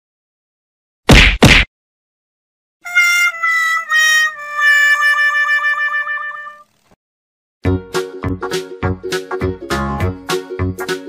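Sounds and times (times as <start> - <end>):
sad trombone sound effect: 2.9 - 6.7.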